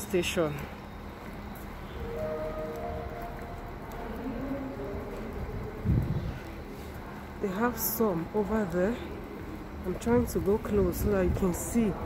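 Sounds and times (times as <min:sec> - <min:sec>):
steady low rumble: 0:00.9 - 0:07.6.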